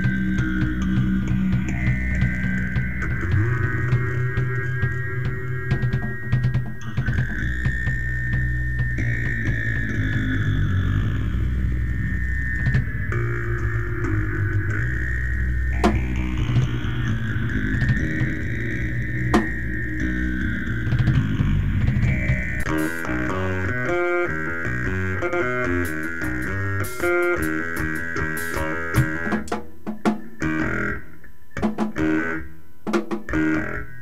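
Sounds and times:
wavering electric guitar: 0.0s - 32.6s, 33.2s - 34.0s
drum hits: 25.8s - 30.4s, 32.9s - 33.3s.

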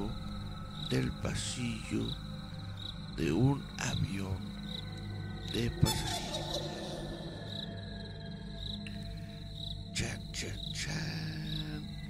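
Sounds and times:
cricket-like high chirps: 0.0s - 12.0s
low drone: 0.0s - 12.0s.

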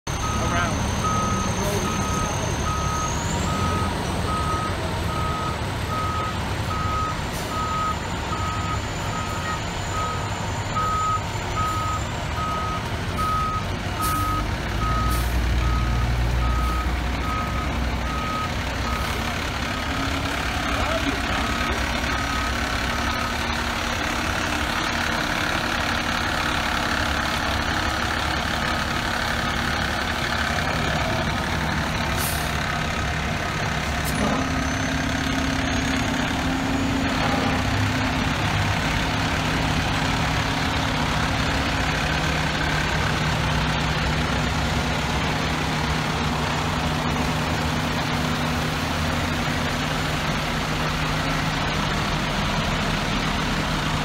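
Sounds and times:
back-up alarm beeping: 0.1s - 19.2s
diesel engine running: 0.1s - 54.0s.

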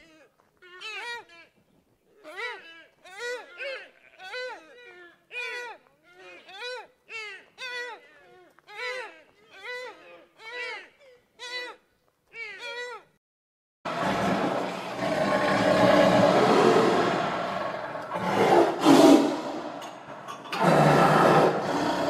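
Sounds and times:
cheetah rough call: 13.9s - 22.0s.

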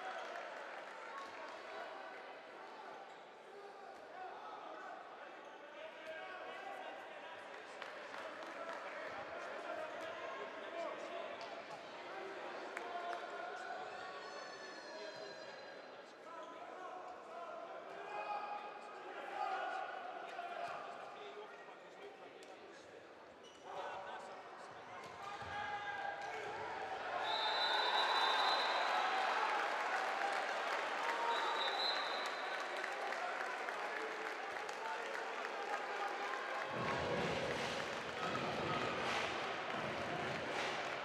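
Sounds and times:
high steady whistle: 27.2s - 29.0s.

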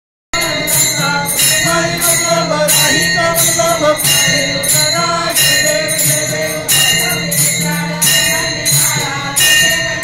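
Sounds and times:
devotional song singing: 0.4s - 10.0s
jingling metal percussion: 0.4s - 10.0s
steady high ringing: 0.4s - 10.0s.

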